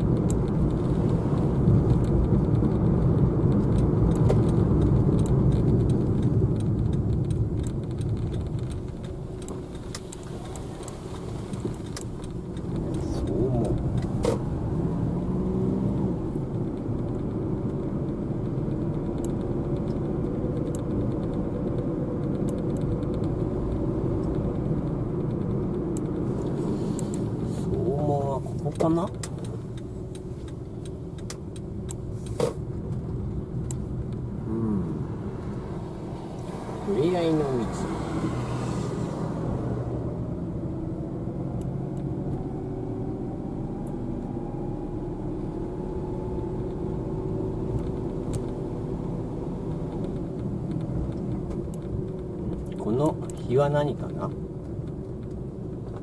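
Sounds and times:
car engine and tyre rumble: 0.0s - 56.0s.

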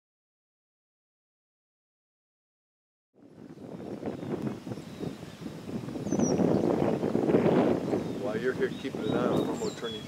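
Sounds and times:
wind buffeting microphone: 3.2s - 10.0s.

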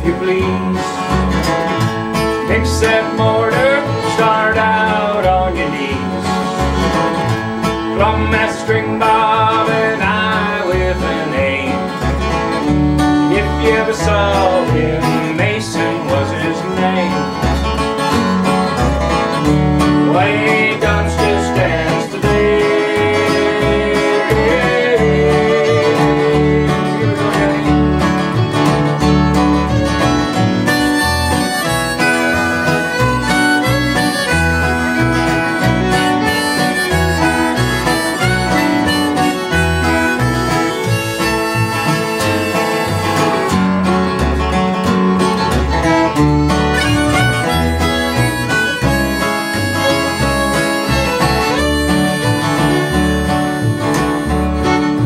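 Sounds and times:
harmonica: 0.0s - 55.0s
pulsing bass line: 0.0s - 55.0s
strummed acoustic guitar: 0.0s - 55.0s.

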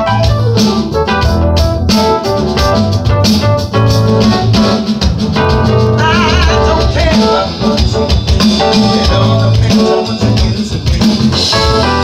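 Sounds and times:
high lead line with vibrato: 0.0s - 10.6s
electronic drum beat: 0.0s - 12.0s
keyboard chords: 0.0s - 12.0s.

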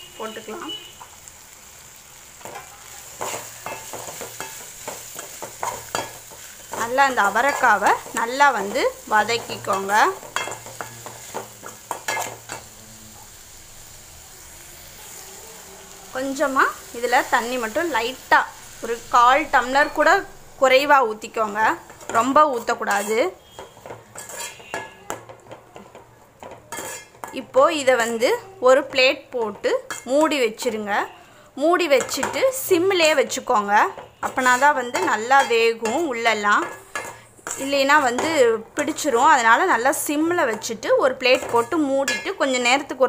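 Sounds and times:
light frying sizzle: 0.0s - 43.0s
spoon scraping and clinking in pan: 2.4s - 12.7s, 21.9s - 25.6s, 26.4s - 27.4s, 29.4s - 30.2s, 33.9s - 39.3s, 41.3s - 42.6s
metal ladle scraping pan: 21.9s - 25.1s, 26.7s - 27.3s, 33.9s - 38.4s.

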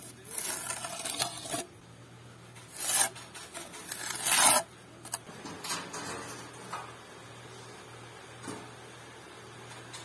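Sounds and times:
trowel scraping wet mortar: 0.0s - 1.7s, 2.7s - 4.7s.

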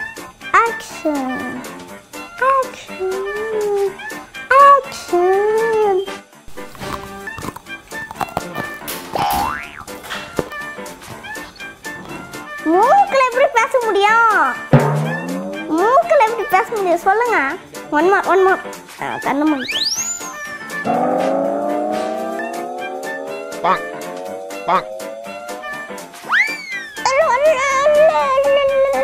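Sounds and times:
background music: 0.0s - 29.0s
cartoon rising pitch glide: 14.8s - 15.8s, 19.6s - 27.1s.

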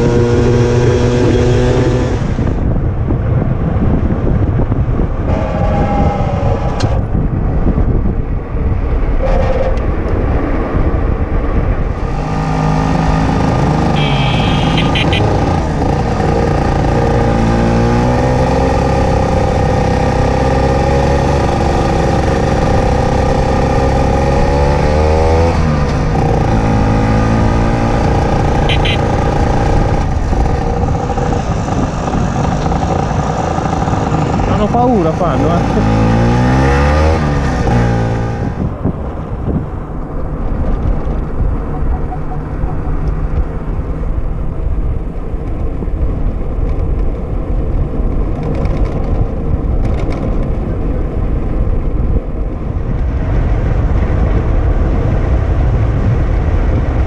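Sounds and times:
wind noise: 0.0s - 57.0s
motor scooter engine running: 13.2s - 17.1s, 28.4s - 34.9s
short high beeps: 14.0s - 15.4s, 28.7s - 29.1s, 41.7s - 43.0s.

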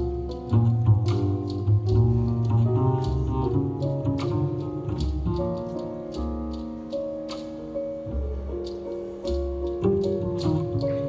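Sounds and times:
light cymbal ticks: 0.0s - 7.8s
grand piano chords: 0.0s - 11.0s
low double bass notes: 0.0s - 11.0s.

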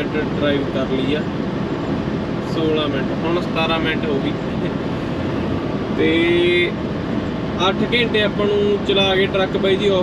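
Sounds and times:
truck road and engine noise: 0.0s - 10.0s.

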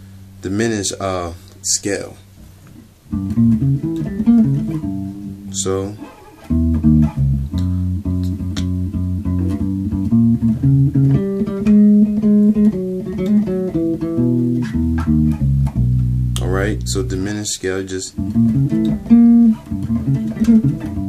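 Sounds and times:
electric bass guitar notes: 3.0s - 21.0s.

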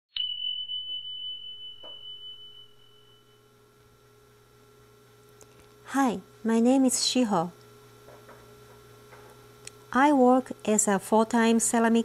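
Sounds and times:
high bell tone ringing: 0.1s - 4.5s
faint steady hum: 0.8s - 12.0s.

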